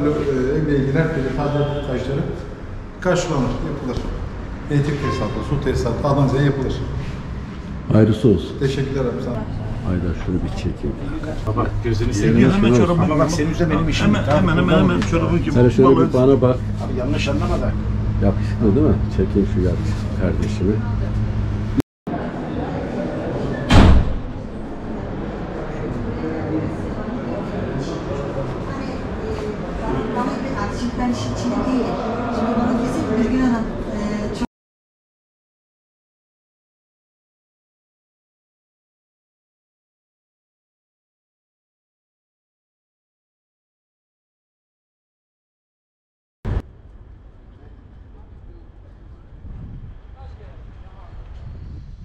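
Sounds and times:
room noise: 0:00.0 - 0:34.5
traffic rumble: 0:00.0 - 0:34.5, 0:46.5 - 0:52.0
loud thud: 0:23.7 - 0:24.4
loud thump: 0:23.7 - 0:24.4
wind on microphone: 0:49.1 - 0:52.0.

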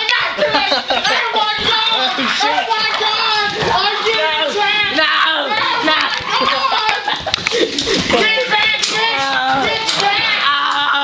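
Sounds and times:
people shouting excitedly: 0:00.0 - 0:07.2, 0:07.9 - 0:11.0.

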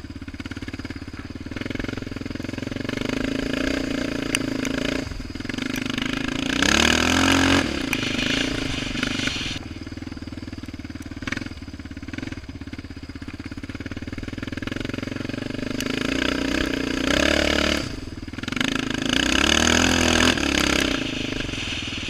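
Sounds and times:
quad engine revving: 0:00.0 - 0:09.6, 0:13.9 - 0:22.0
water and mud spraying: 0:07.9 - 0:09.6, 0:20.5 - 0:22.0.

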